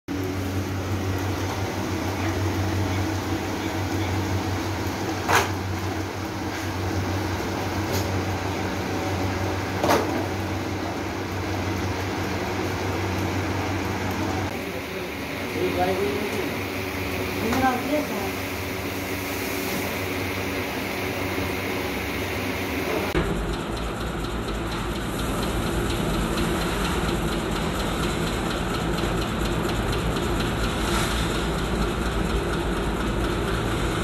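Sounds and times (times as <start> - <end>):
machine humming: 0.1 - 34.0.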